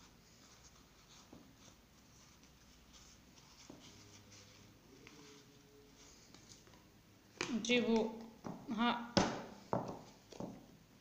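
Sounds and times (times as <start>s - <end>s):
paper towel rustling: 0.0s - 6.8s.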